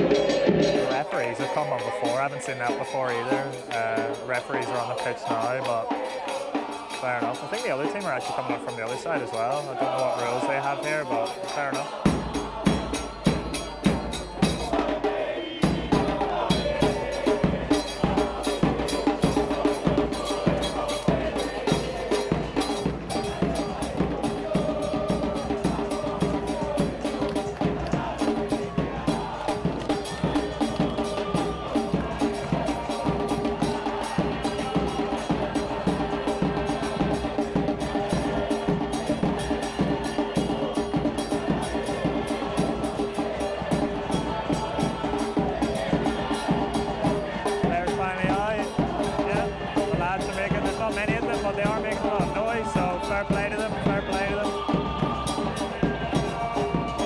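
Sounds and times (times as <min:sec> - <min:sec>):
drums beating fast rhythm: 0:00.0 - 0:57.0
fans singing: 0:00.0 - 0:57.0.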